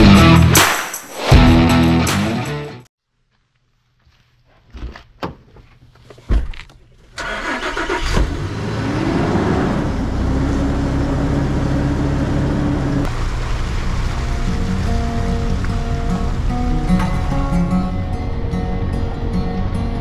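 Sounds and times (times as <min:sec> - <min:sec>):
background music: 0:00.0 - 0:02.8, 0:14.5 - 0:20.0
vehicle engine starting and revving: 0:07.2 - 0:19.8.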